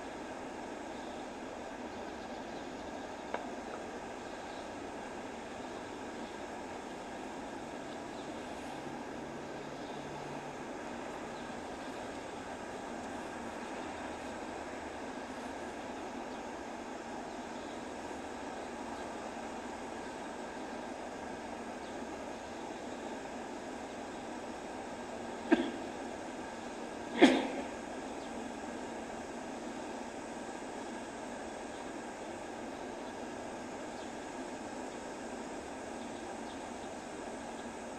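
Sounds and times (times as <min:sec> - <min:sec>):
steady background noise: 0:00.0 - 0:37.9.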